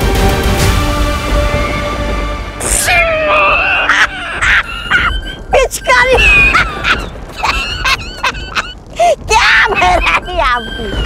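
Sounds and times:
high-pitched wavering cries: 2.9s - 11.0s.

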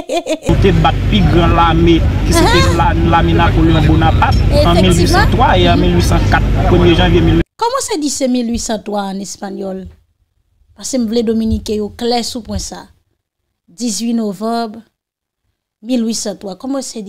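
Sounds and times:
recorded voices: 0.4s - 9.9s, 10.8s - 12.9s
low hum and rumble: 0.5s - 7.4s, 11.1s - 12.7s.

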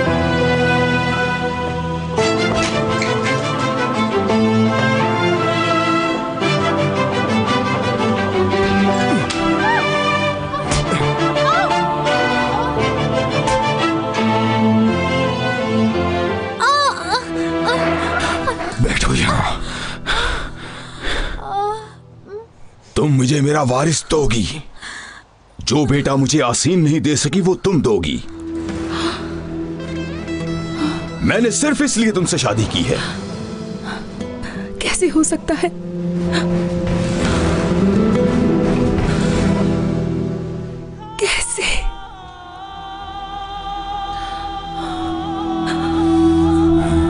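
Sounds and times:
soft dramatic music: 0.0s - 24.5s, 25.7s - 47.0s
woman sobbing: 9.1s - 12.9s, 16.6s - 18.8s, 21.4s - 22.5s, 41.0s - 42.2s
woman wailing: 9.2s - 12.9s, 16.6s - 18.7s
woman gasping and crying out: 16.6s - 18.6s, 19.6s - 22.5s.

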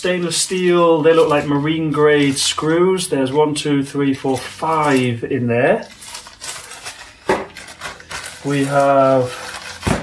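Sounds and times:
plastic bag crinkling: 5.9s - 10.0s.

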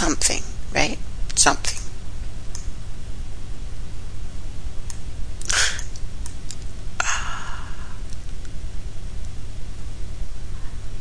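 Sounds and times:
steady low hum: 0.0s - 11.0s
person sighing: 5.4s - 5.9s, 7.0s - 8.1s.

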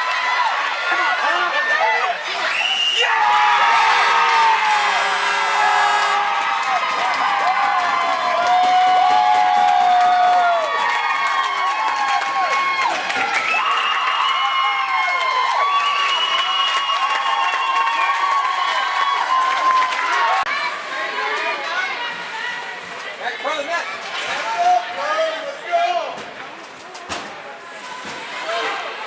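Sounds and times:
crowd cheering and screaming: 0.0s - 20.8s
people clapping: 5.8s - 20.6s.

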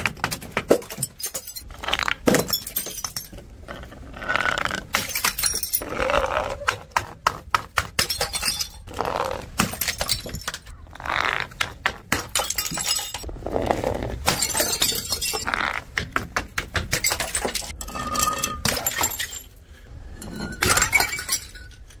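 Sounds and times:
glass jar bouncing down concrete steps: 0.0s - 3.4s, 4.9s - 5.8s, 7.7s - 8.9s, 9.6s - 10.7s, 12.1s - 13.3s, 14.3s - 15.5s, 16.6s - 19.5s, 20.2s - 21.8s
glass shards clinking: 0.9s - 1.7s, 2.3s - 3.4s, 5.0s - 5.8s, 8.0s - 8.9s, 12.4s - 13.3s, 14.3s - 15.5s, 17.0s - 19.6s, 20.2s - 22.0s.

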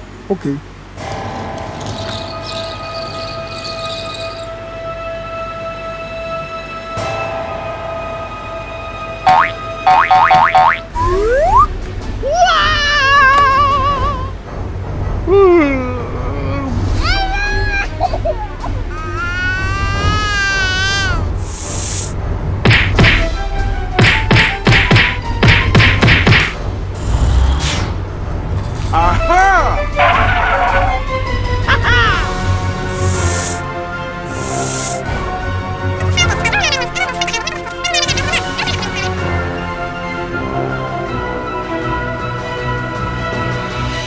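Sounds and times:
cartoon rising chirps: 10.9s - 11.7s
background music with low beat: 22.2s - 26.9s
cartoon-like vocal sounds: 31.7s - 32.4s, 36.0s - 39.2s.

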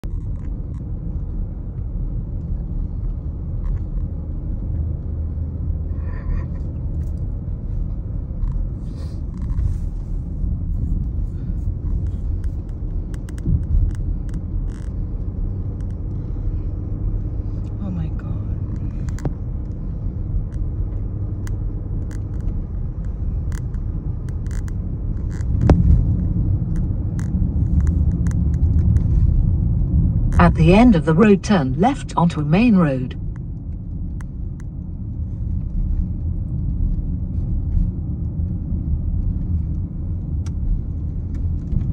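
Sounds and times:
car tyres and engine rumble: 0.0s - 41.9s.

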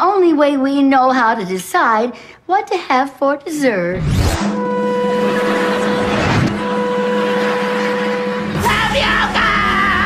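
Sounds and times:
racing car engine drone: 4.4s - 10.0s.

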